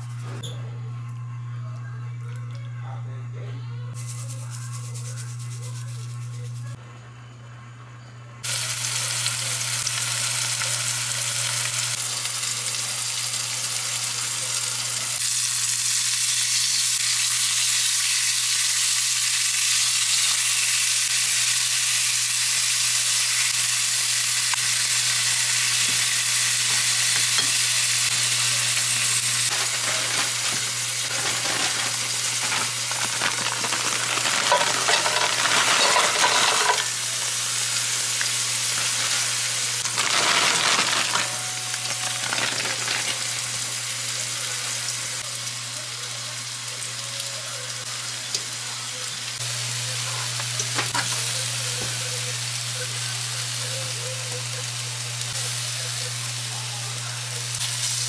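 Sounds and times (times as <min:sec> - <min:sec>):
food sizzling in a pan: 0:08.4 - 0:58.0.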